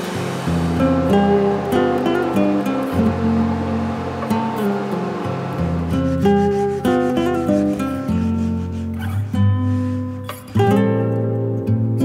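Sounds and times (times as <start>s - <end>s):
acoustic guitar music: 0.0s - 12.0s
sandpaper rubbing wood: 4.7s - 10.6s.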